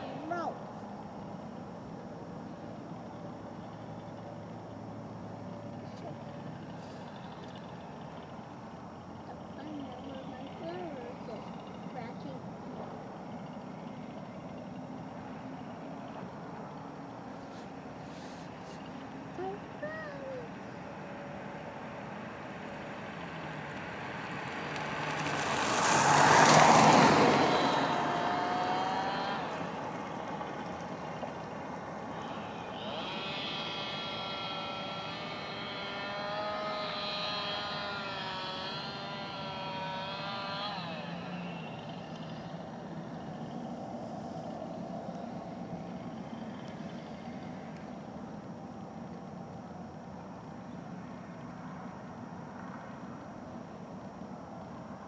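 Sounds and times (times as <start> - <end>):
road vehicle passing by: 0.0 - 55.0
steady background hum: 0.0 - 55.0.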